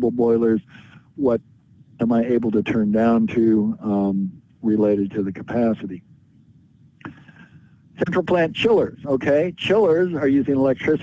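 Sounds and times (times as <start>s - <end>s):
low steady background hiss: 0.0s - 11.0s.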